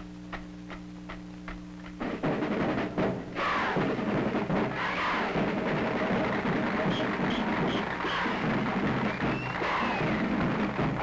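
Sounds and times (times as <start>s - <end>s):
steady low hum: 0.0s - 11.0s
marching percussion clicking: 0.3s - 3.2s, 3.8s - 11.0s.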